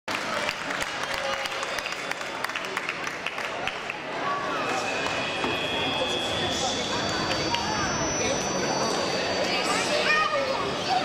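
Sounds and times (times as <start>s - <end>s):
small crowd clapping: 0.1s - 4.4s
voices chattering: 1.2s - 11.0s.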